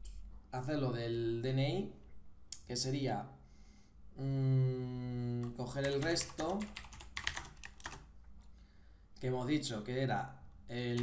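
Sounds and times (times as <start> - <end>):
keyboard typing: 5.4 - 8.1.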